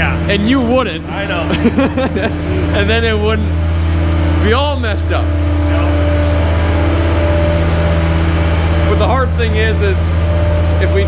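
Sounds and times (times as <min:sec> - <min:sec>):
engine idling hum: 0:00.0 - 0:11.0
held tones: 0:00.0 - 0:11.0.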